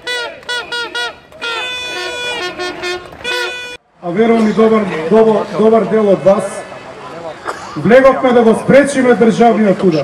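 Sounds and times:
horns tooting: 0:00.0 - 0:04.6
crowd: 0:00.0 - 0:10.0.

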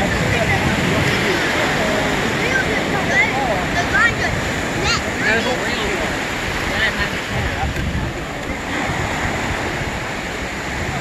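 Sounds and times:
ocean surf breaking: 0:00.0 - 0:11.0
wind buffeting microphone: 0:00.0 - 0:11.0.

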